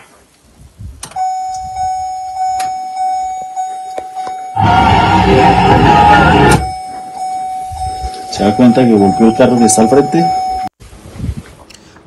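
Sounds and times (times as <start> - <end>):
car warning buzzer: 1.2 - 10.7
loud sound: 4.6 - 6.8.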